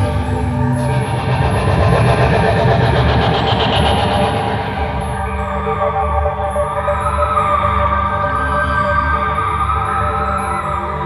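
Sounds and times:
fluttering noisy texture: 0.0s - 6.7s
dense low electronic drone: 0.0s - 8.9s.

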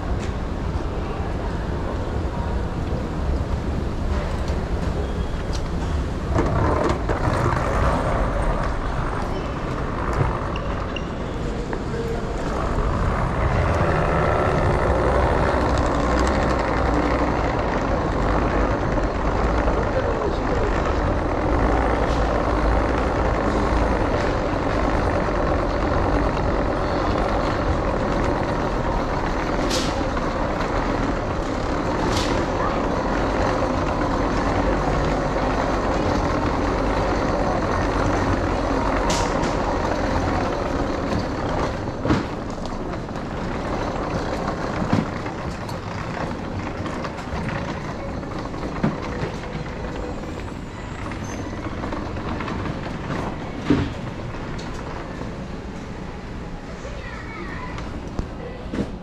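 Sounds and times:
suitcase wheels rolling on tiles: 4.0s - 56.7s.

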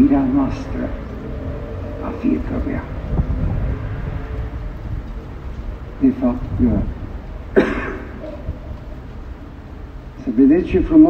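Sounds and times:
low rumble with faint hiss: 0.0s - 11.0s.

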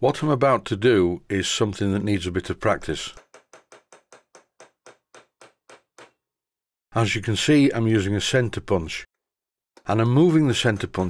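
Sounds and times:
hammer tapping centre punch: 3.1s - 6.2s.

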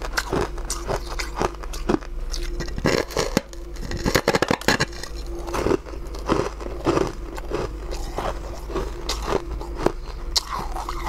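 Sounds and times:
person chewing crunchy food: 0.0s - 11.0s.

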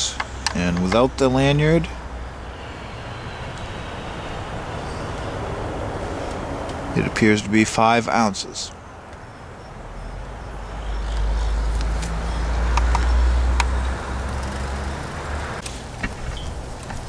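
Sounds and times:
passing vehicle engine rumble: 0.0s - 17.0s.

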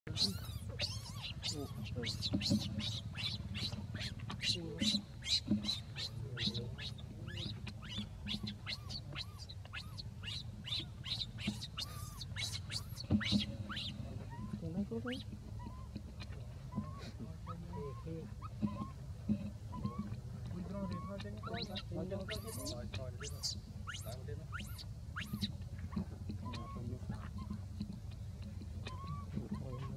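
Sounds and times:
baby monkey screaming: 0.1s - 19.0s, 19.7s - 27.6s, 28.8s - 29.9s.

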